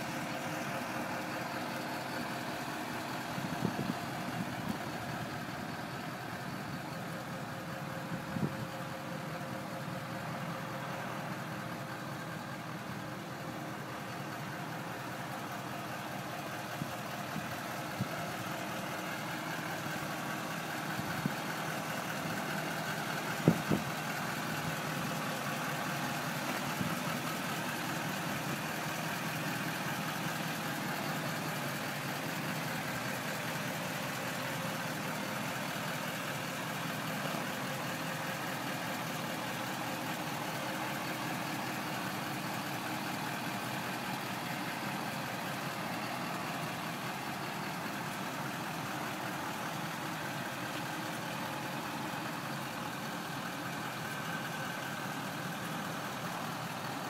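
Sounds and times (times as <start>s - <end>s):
truck engine idling: 0.0s - 57.0s.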